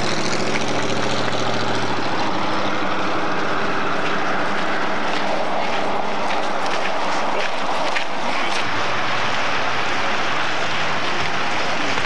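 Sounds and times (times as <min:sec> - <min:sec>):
steady rushing outdoor noise: 0:00.0 - 0:12.0.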